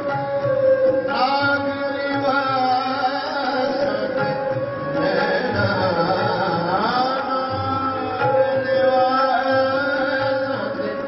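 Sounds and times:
harmonium drone: 0.0 - 11.0
man singing sliding melody: 0.0 - 11.0
tabla drumming: 0.0 - 11.0.

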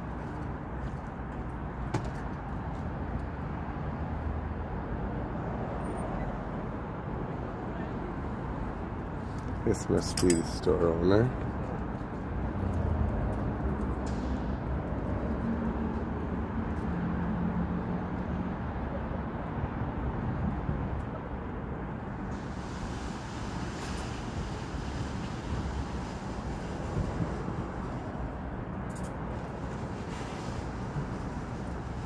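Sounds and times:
traffic: 0.0 - 32.0.

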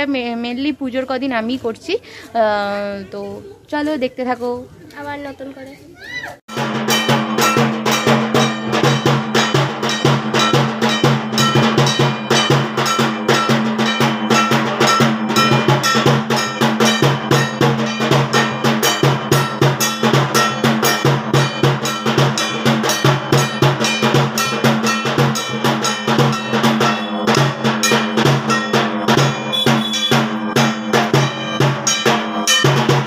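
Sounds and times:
drum beats: 6.5 - 33.0
metal percussion clanging: 6.5 - 33.0
ringing metal gong strikes: 6.5 - 33.0.

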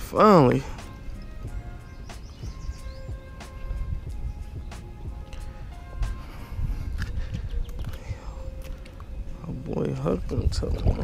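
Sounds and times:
wind rumble on microphone: 0.6 - 11.0.

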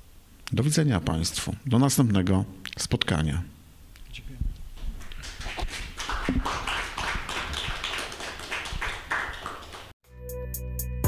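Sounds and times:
audience applauding: 5.0 - 10.0.

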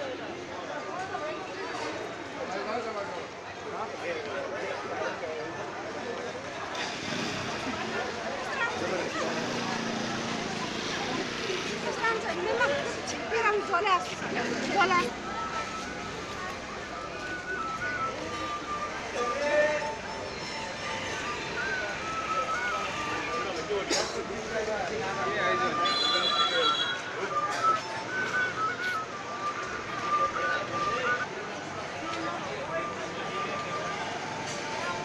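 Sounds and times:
street crowd chatter: 0.0 - 35.0.

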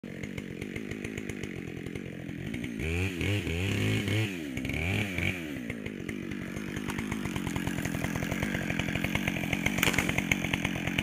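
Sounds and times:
chainsaw idling: 0.0 - 11.0.

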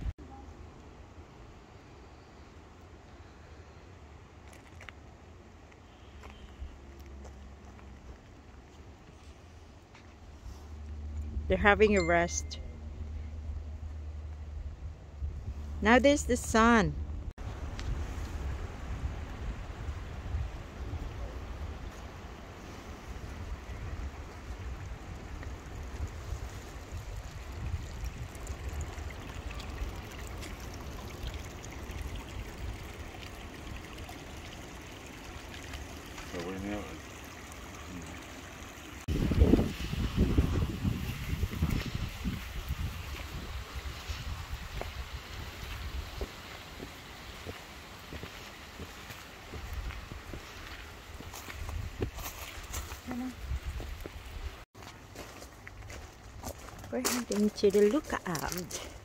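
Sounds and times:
voices: 11.5 - 12.6, 15.8 - 17.0
wind noise on microphone: 17.1 - 21.9, 23.2 - 29.1, 39.1 - 46.4, 51.2 - 54.6
stream trickling: 17.4 - 59.0.

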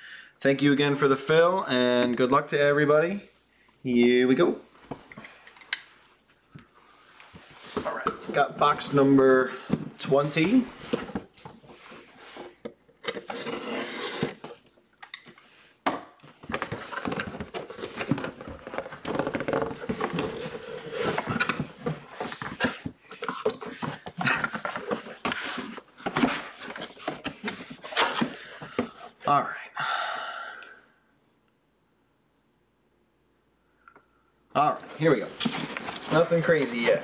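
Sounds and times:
cardboard box being unpacked: 9.6 - 14.7, 16.3 - 29.2, 34.7 - 37.0.

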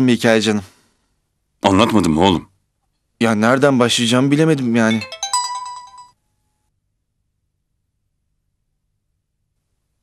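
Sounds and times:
phone text message alert melody: 4.9 - 6.1.

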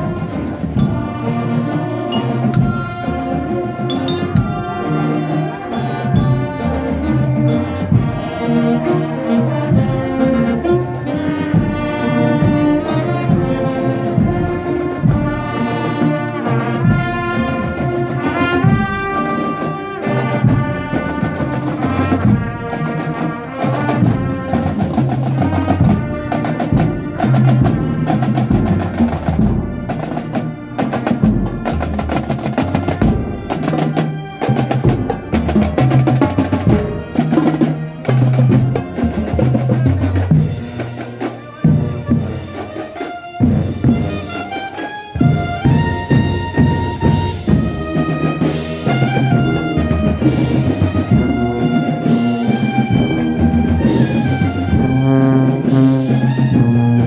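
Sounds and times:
marching drums beating: 0.0 - 8.6, 9.6 - 57.0
trumpets and saxophones melody: 0.0 - 57.0.

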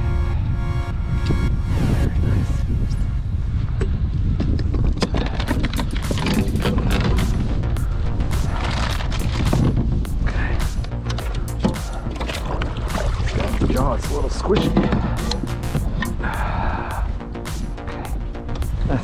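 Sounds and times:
background music: 0.0 - 3.5, 5.5 - 19.0
wind rumbling on microphone: 0.0 - 19.0
clicks and knocks on kayak: 4.4 - 7.4, 14.4 - 16.2.

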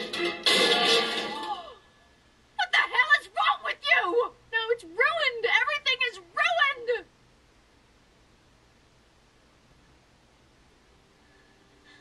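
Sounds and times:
television music: 0.0 - 2.7.

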